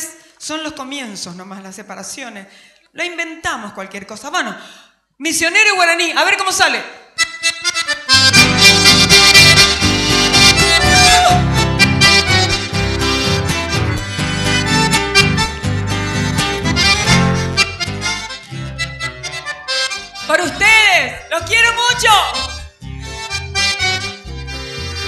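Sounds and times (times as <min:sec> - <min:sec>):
accordion: 0:07.2 - 0:25.0
electric keyboard: 0:07.2 - 0:25.0
live band instrumental: 0:07.6 - 0:25.0
bass line: 0:08.1 - 0:25.0.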